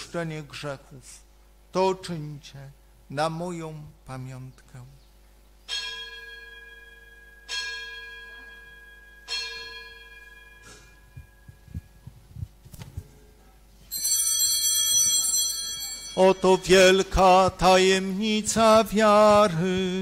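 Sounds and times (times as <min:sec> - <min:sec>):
bell ringing: 0:05.7 - 0:11.8, 0:13.9 - 0:17.2
bright high-toned ringing: 0:05.7 - 0:12.0, 0:13.9 - 0:17.5.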